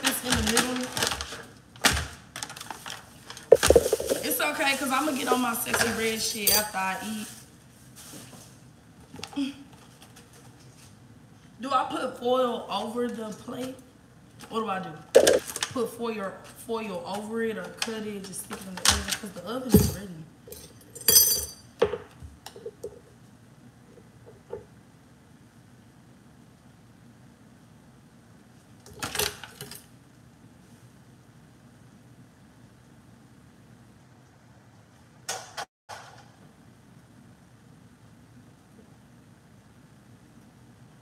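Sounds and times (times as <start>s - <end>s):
pans foil and utensils rattling: 0.0s - 8.4s
low steady hum: 3.2s - 28.9s
kitchen clatter: 3.4s - 7.1s.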